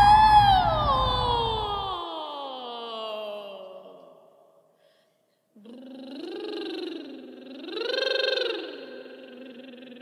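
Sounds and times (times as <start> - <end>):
woman singing wordlessly: 5.6 - 10.0.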